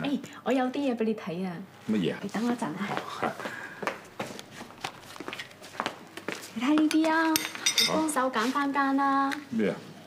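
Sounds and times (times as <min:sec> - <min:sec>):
footsteps in heeled boots: 0:03.8 - 0:06.9.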